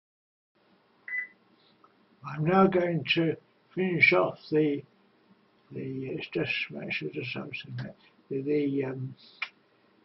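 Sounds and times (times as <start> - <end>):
faint room hiss: 0.6 - 10.0.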